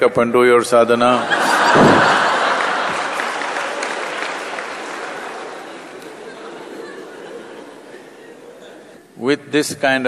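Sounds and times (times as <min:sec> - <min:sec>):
audience applause: 0:01.5 - 0:08.0.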